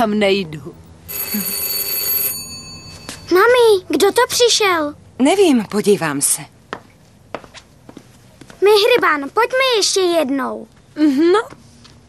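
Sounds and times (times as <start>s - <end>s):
doorbell ringing: 1.1s - 3.6s.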